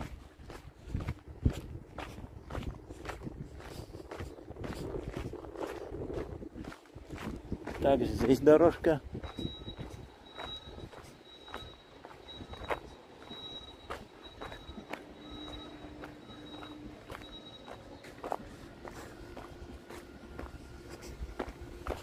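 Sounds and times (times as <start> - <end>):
footsteps on gravel road: 0.0 - 22.0.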